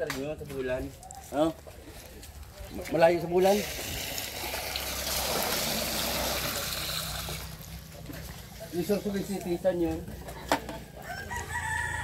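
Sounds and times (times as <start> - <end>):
rooster crowing: 10.9 - 12.0.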